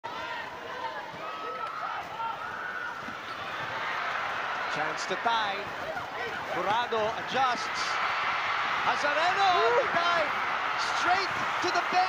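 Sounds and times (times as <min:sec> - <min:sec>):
crowd voices din: 0:00.0 - 0:12.0.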